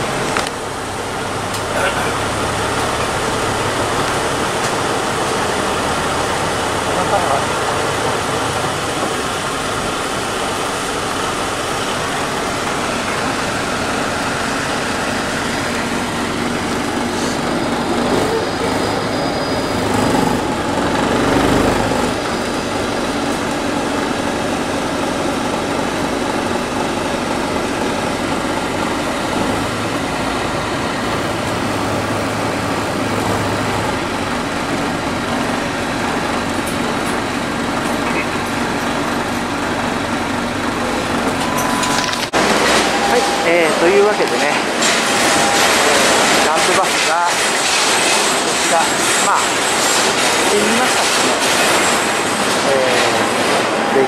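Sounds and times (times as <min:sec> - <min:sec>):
bus engine and road noise drone: 0:00.0 - 0:54.0.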